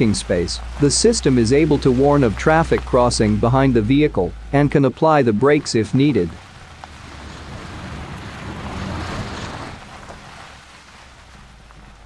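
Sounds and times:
low engine hum: 0.0 - 12.0
tyres hissing on gravel: 0.0 - 12.0.

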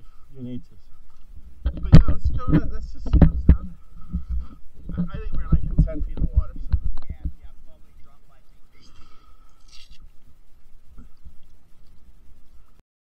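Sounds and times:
water slapping muffled thumps: 1.6 - 7.5.

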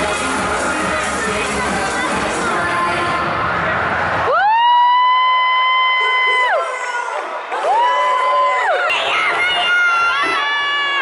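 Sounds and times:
faint arena crowd: 0.0 - 11.0.

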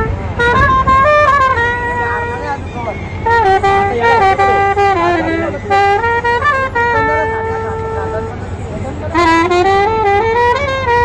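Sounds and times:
solo trumpet: 0.0 - 11.0.

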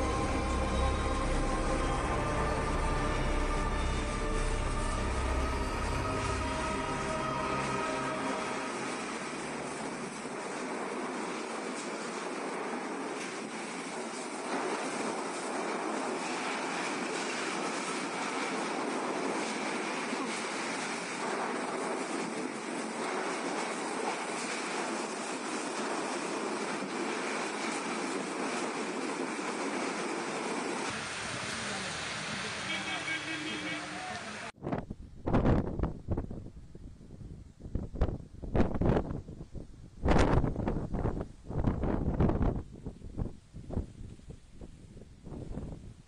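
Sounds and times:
driving rain: 0.0 - 34.6
strong wind rushing: 34.6 - 46.0.

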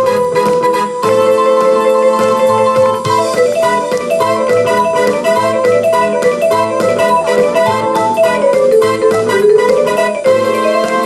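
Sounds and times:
electronic vibraphone notes: 2.2 - 11.0.

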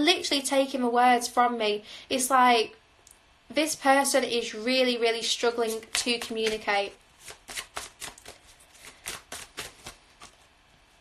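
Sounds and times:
cards being shuffled by hand: 5.5 - 10.6.

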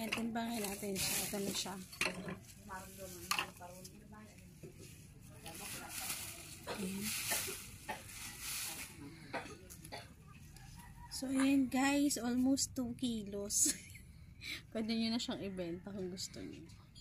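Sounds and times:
plastic garbage bag rustling: 0.0 - 9.1.

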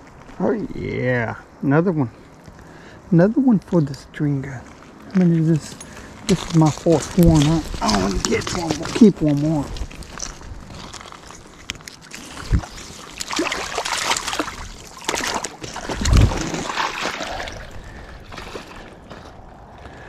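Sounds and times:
water splashing and sloshing: 5.6 - 19.7.

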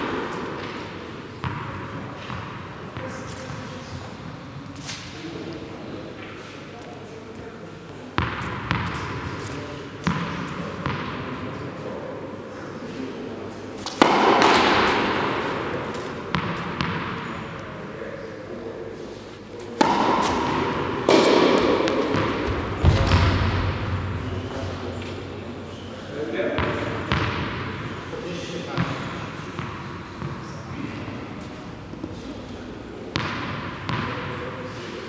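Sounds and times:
tennis ball hits echoing in hall: 0.0 - 6.9, 8.0 - 35.0.

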